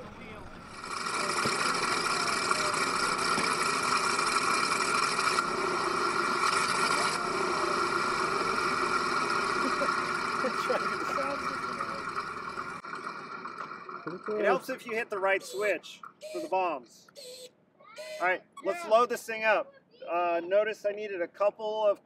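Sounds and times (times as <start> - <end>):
engine-like running with whine: 0.0 - 15.0.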